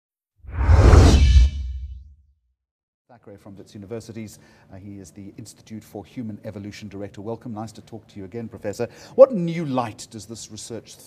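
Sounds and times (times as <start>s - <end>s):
whoosh with deep bass rumble: 0.5s - 2.0s.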